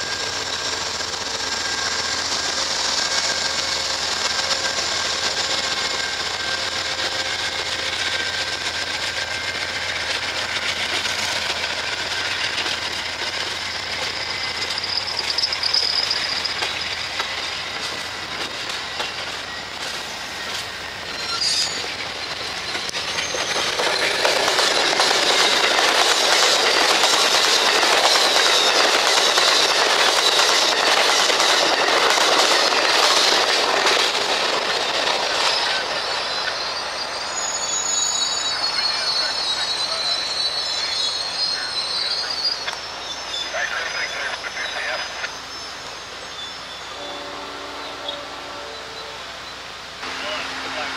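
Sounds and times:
train wheels clattering on rails: 0.0s - 47.4s
high-pitched wheel squeal: 0.0s - 49.2s.

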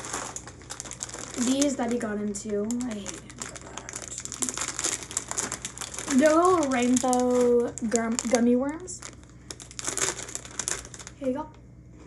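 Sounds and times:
plastic bag crinkling: 0.0s - 11.4s.

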